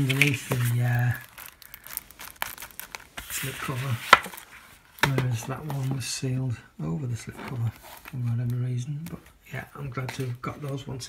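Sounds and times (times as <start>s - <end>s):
plastic shrink-wrap crinkling: 0.0s - 6.0s.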